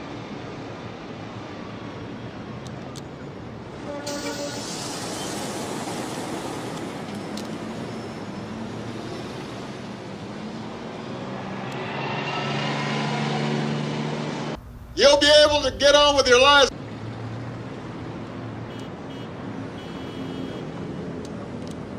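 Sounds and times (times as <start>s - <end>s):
passing cars: 0.0s - 21.9s
low steady hum: 14.6s - 16.7s.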